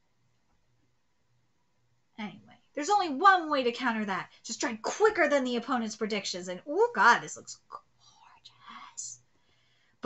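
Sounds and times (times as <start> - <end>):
woman whispering faintly: 7.7 - 9.2.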